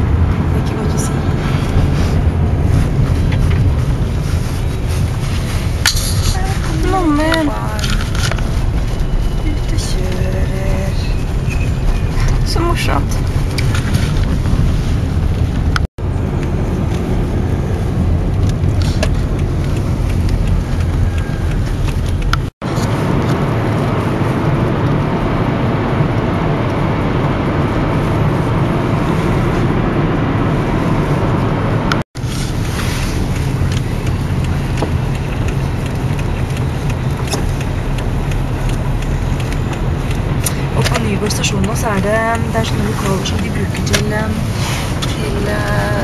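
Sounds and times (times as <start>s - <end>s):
road and engine rumble inside car: 0.0s - 46.0s.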